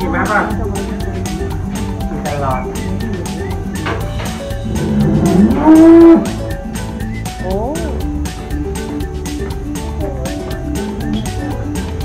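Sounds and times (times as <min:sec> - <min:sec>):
cow mooing: 0:04.6 - 0:06.4.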